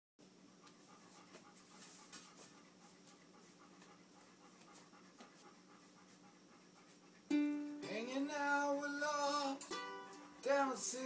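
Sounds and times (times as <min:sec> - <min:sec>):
faint steady hum: 0:00.2 - 0:11.0
dog panting softly: 0:00.3 - 0:07.3.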